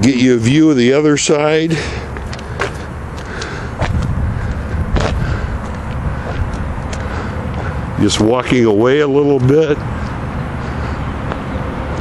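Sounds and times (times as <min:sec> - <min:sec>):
footsteps and camera handling knocks: 0:02.1 - 0:04.1
wind buffeting microphone: 0:02.2 - 0:12.0.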